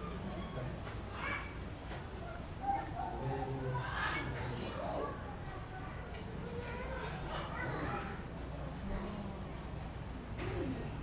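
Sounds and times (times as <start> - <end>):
background murmur: 0.0 - 11.0.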